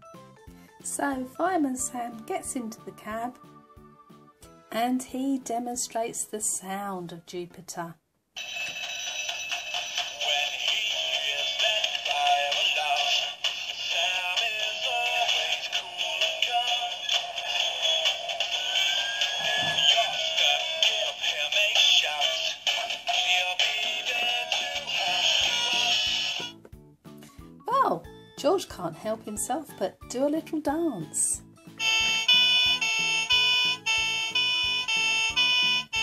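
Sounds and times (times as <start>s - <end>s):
toy playing electronic sung tune: 8.4s - 26.5s, 31.8s - 36.0s.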